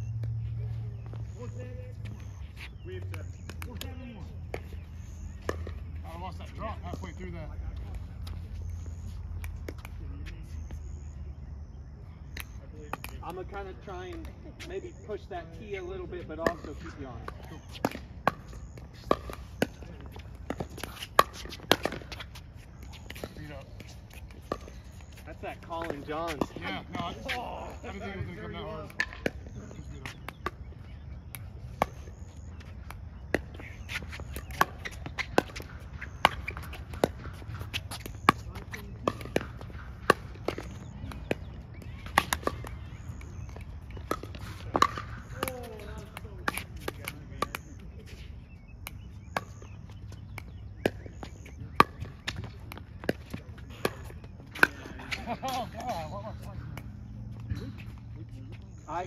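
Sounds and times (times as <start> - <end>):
paddles hitting plastic ball: 28.7 - 47.8.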